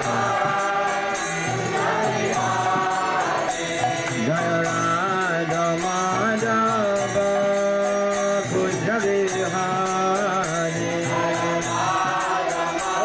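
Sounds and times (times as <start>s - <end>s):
percussion steady beat: 0.0s - 13.0s
sustained harmonium: 0.0s - 13.0s
man leading devotional chant: 4.1s - 13.0s.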